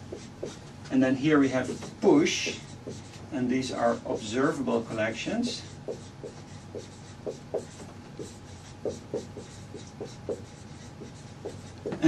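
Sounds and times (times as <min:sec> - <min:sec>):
marker squeaking on a whiteboard: 0:00.0 - 0:00.6, 0:01.6 - 0:03.2, 0:03.9 - 0:12.0.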